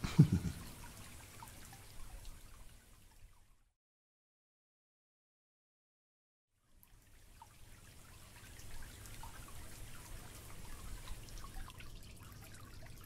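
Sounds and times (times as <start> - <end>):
water dripping and trickling: 0.0 - 3.8, 6.6 - 13.0.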